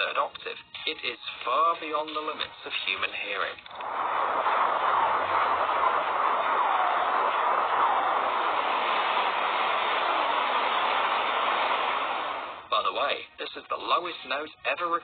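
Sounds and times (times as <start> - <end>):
steady rushing noise: 3.7 - 12.7.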